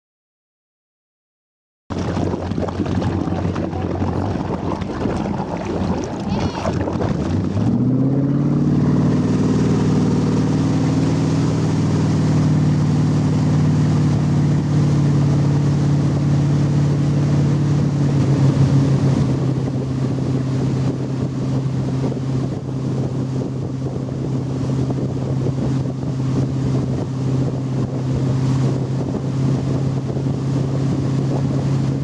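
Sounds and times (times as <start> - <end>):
motorboat engine revving: 1.9 - 32.0.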